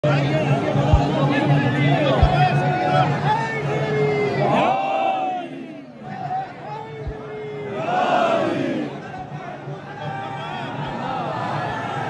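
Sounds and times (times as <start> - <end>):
crowd calling out: 0.5 - 12.0.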